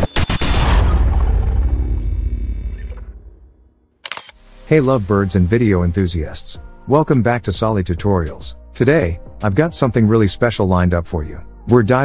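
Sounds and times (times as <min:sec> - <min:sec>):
deep boom: 0:00.2 - 0:03.9.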